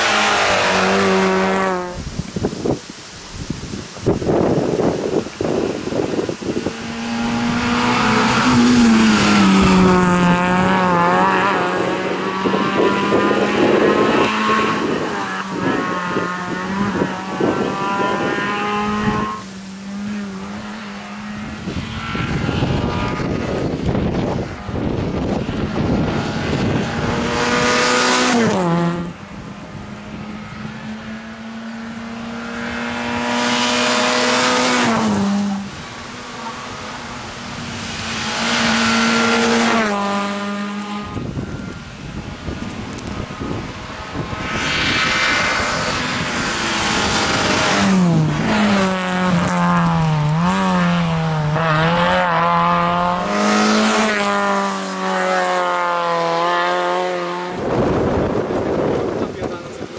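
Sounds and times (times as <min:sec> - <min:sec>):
rally car engine driven hard: 0:04.2 - 0:59.9.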